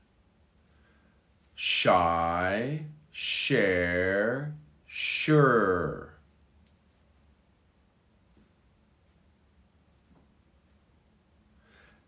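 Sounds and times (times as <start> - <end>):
spoken word: 1.6 - 6.3.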